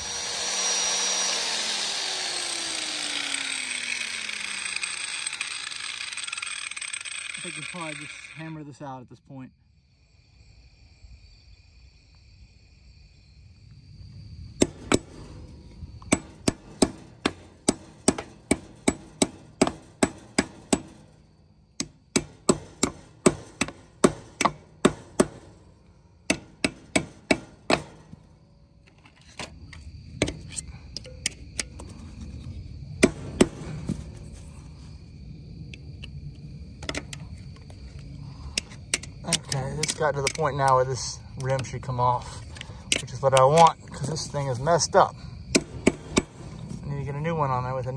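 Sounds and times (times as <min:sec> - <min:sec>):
hammer striking steel punch: 0:16.1 - 0:21.0, 0:21.8 - 0:25.6, 0:26.3 - 0:28.1.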